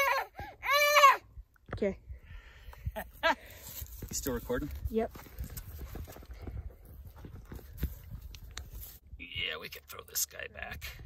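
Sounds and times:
wind rumbling on microphone: 0:03.8 - 0:09.8.

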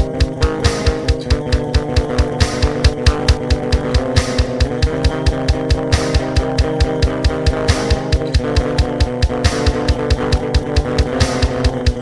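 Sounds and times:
distorted electric guitar chords: 0:00.0 - 0:12.0
driving drum beat: 0:00.0 - 0:12.0.

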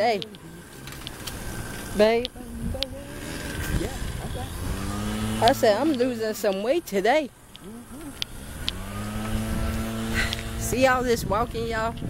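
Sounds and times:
passing vehicle engine hum: 0:00.0 - 0:12.0.

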